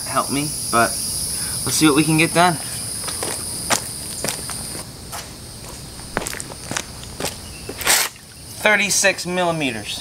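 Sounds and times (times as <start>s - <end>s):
insects droning: 0.0s - 10.0s
footsteps on paved driveway: 3.0s - 8.3s.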